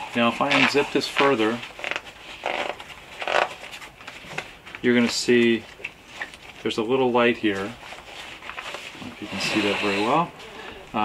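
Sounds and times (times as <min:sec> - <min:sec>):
zipper being pulled open: 0:00.5 - 0:03.6, 0:09.0 - 0:10.3.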